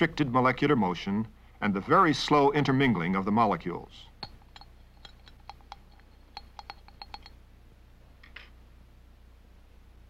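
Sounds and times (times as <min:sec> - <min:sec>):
stirring rod clinking on glass: 0:04.2 - 0:07.4.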